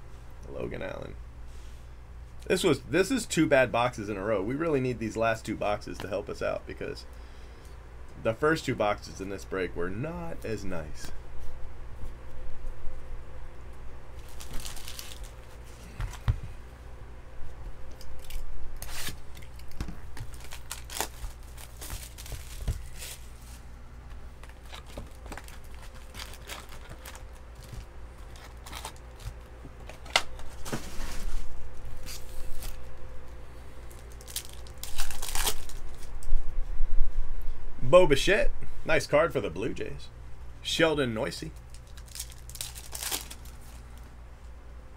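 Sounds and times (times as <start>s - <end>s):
faint steady hum: 0.0s - 44.9s
foil wrapper ripped open: 14.2s - 15.4s, 18.2s - 23.3s, 24.4s - 29.4s, 33.9s - 36.1s, 41.6s - 43.8s
packaging tearing and crinkling: 14.2s - 15.6s, 18.0s - 23.6s, 24.4s - 30.8s, 33.9s - 36.2s, 41.6s - 44.0s.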